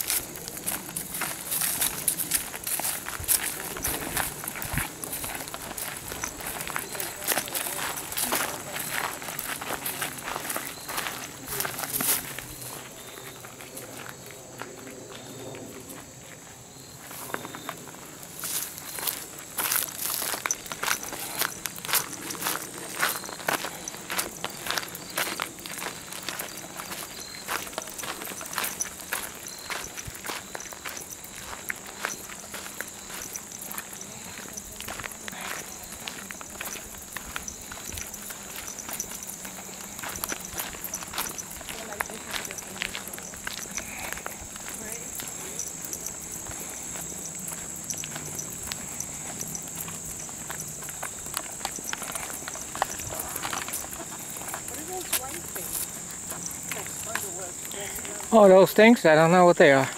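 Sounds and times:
footsteps on gravel trail: 0.0 - 59.9.

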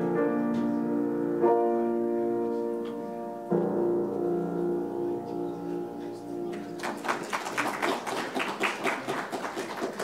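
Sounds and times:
congregation applauding: 6.5 - 10.0.

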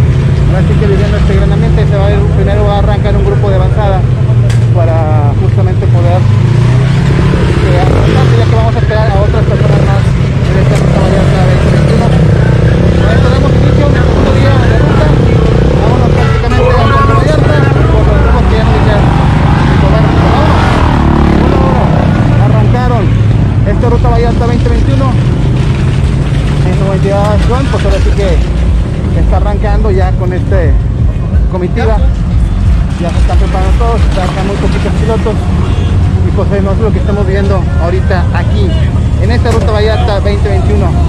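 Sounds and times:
motorcycle engines idling: 0.0 - 41.0
people talking: 0.5 - 6.3, 7.6 - 20.8, 21.4 - 25.2, 26.6 - 28.5, 29.1 - 32.2, 32.9 - 41.0.

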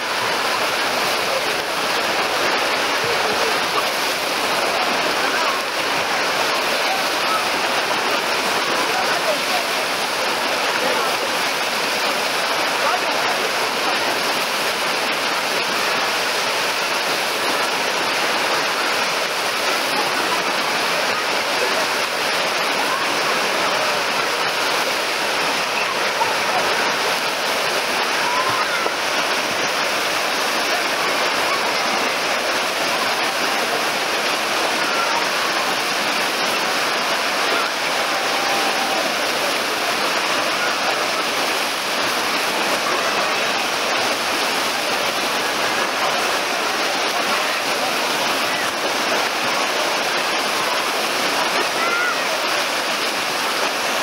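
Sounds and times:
voices of bathers: 0.0 - 54.0
waves churning and breaking: 0.0 - 54.0.

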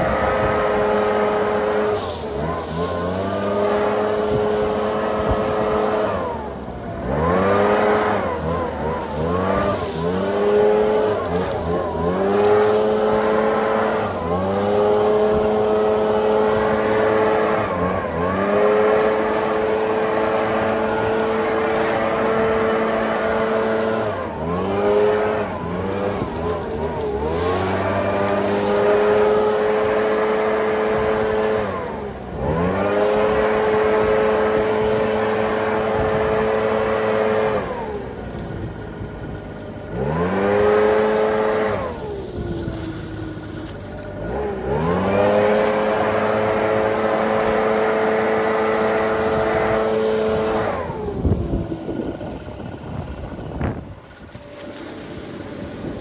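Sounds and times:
leaf blower revving: 0.0 - 56.0.

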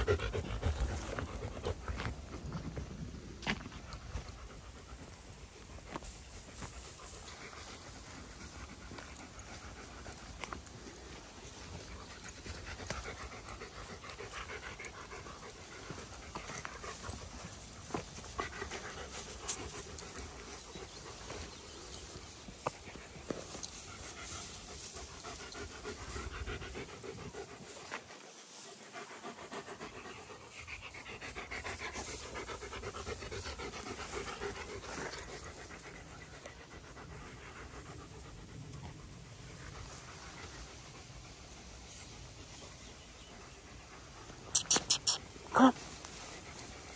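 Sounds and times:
dog panting: 0.0 - 46.9.

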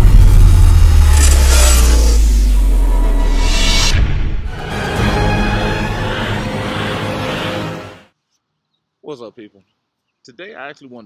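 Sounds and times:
deep bass rumble: 0.0 - 5.1.

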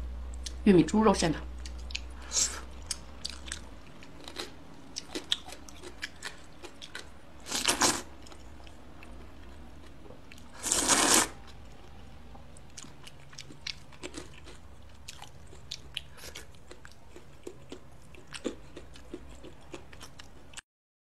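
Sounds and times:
wet chewing: 1.6 - 11.8, 12.6 - 20.5
slurping noodles: 10.6 - 11.4.

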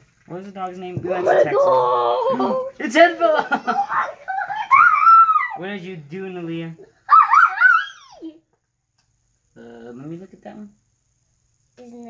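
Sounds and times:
girl laughing: 1.3 - 2.7, 3.3 - 5.6.

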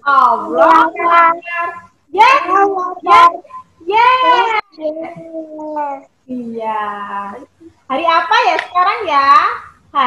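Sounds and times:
woman and children singing: 0.0 - 1.5.

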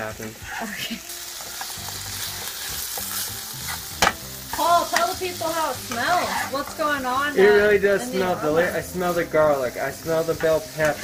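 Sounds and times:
food sizzling in frying pan: 0.0 - 11.0
spatula scraping pan: 1.4 - 9.1.

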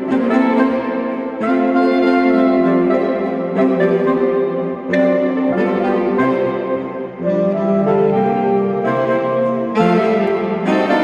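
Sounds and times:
saxophone quartet playing chords: 0.0 - 11.0.

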